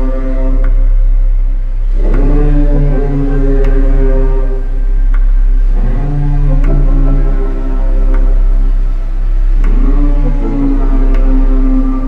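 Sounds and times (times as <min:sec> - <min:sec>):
deep sustained sub-bass: 0:00.0 - 0:12.0
held synth chords: 0:00.0 - 0:12.0.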